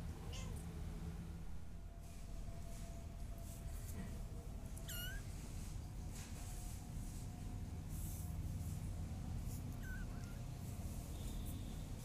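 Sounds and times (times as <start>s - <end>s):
kitten mewing: 4.8s - 5.3s, 9.6s - 10.5s.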